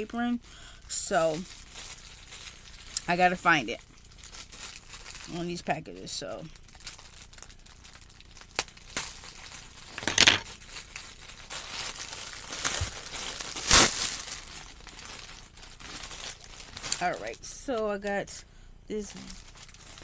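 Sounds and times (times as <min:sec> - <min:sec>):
packaging crinkling and rustling: 0:01.1 - 0:18.2, 0:19.1 - 0:20.0
sharp crackles: 0:06.4 - 0:17.1.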